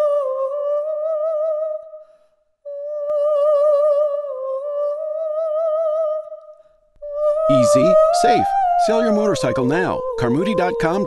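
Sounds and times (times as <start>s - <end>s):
person singing long high note: 7.0s - 11.0s.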